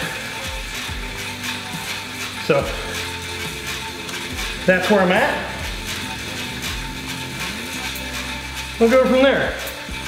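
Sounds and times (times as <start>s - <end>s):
background music: 0.0s - 10.0s
exercise bike pedaling: 0.0s - 10.0s.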